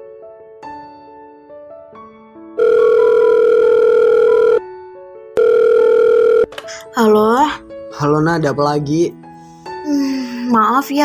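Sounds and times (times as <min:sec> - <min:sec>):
soft keyboard music: 0:00.0 - 0:11.0
telephone ringing: 0:02.6 - 0:04.7, 0:05.4 - 0:06.5.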